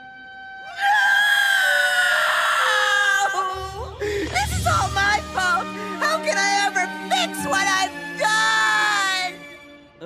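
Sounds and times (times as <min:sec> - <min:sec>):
cartoon boy wailing cry: 0:00.7 - 0:03.6.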